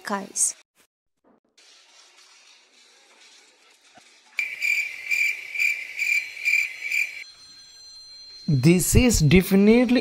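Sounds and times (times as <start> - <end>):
cricket chirping: 4.4 - 8.4.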